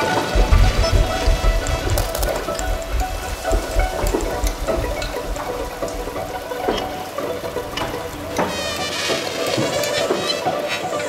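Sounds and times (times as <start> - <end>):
sustained string tones: 0.0 - 11.0
low rumble: 0.3 - 8.4.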